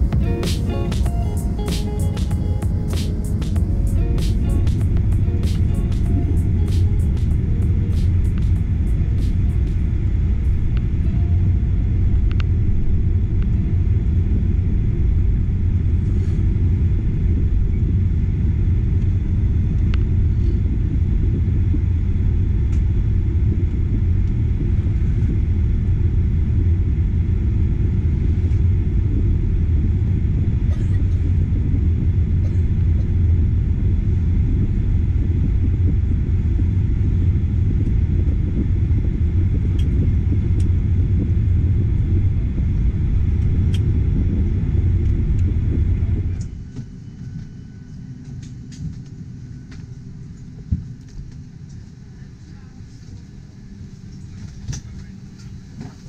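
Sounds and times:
background music: 0.0s - 9.9s
aircraft cabin engine rumble: 0.0s - 56.0s.

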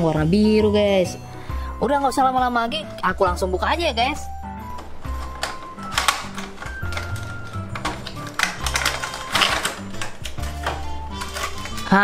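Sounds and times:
toy packaging clicks and rattles: 4.7s - 12.0s.

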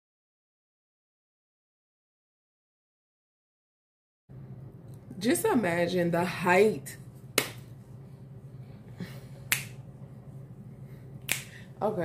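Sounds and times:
steady low hum: 4.3s - 12.0s.

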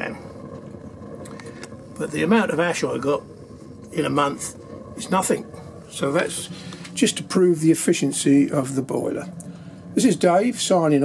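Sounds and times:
faint crackles: 0.0s - 11.0s
stove burning with steady rushing: 0.0s - 11.0s.

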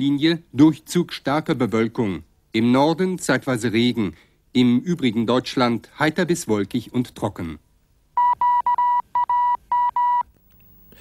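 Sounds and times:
electronic beeps: 8.2s - 10.3s.

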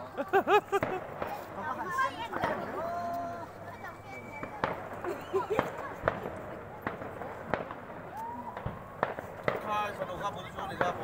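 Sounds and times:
fireworks and firecrackers banging: 0.0s - 11.0s.

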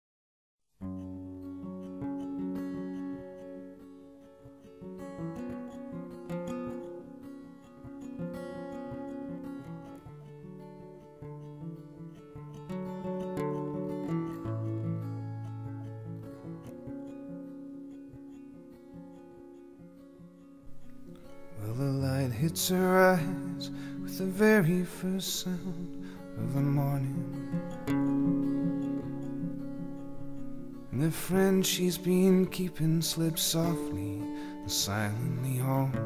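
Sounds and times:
acoustic guitar playing: 0.8s - 36.0s.

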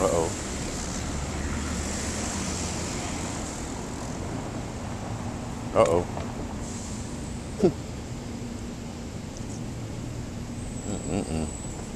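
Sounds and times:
road noise: 0.0s - 11.9s.

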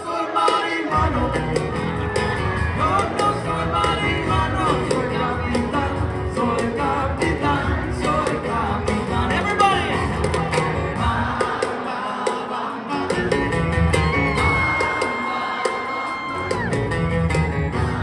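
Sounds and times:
crowd shouting: 0.0s - 4.6s, 9.5s - 18.0s
man singing: 0.0s - 16.6s
acoustic guitars playing: 0.0s - 18.0s.

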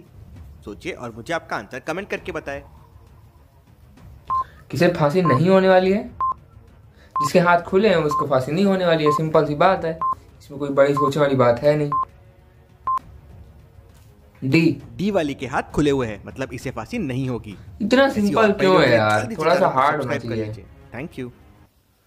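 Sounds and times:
stopwatch timer beeping: 4.3s - 4.5s, 5.2s - 5.5s, 6.2s - 6.4s, 7.2s - 7.4s, 8.1s - 8.3s, 9.0s - 9.3s, 11.0s - 11.2s
man making wordless sounds: 4.7s - 5.6s, 14.6s - 21.1s.

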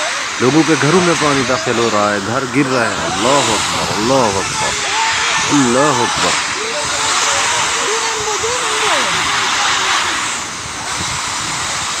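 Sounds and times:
floodwater rushing: 0.0s - 12.0s.

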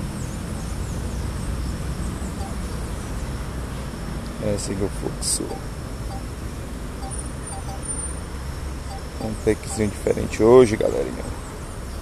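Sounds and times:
distant traffic: 0.0s - 12.0s
faint high-pitched tone: 7.0s - 8.0s, 8.9s - 10.1s.

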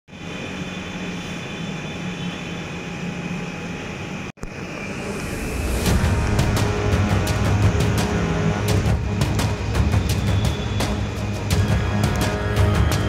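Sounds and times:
music: 4.9s - 13.0s.

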